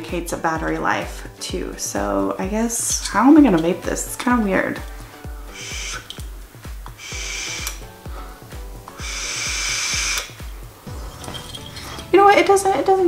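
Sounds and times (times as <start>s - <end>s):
background music with steady beat: 0.0s - 13.0s
person exhaling vapour: 5.4s - 6.2s, 6.9s - 10.4s
person drawing on a vape: 7.0s - 7.7s, 9.0s - 10.3s.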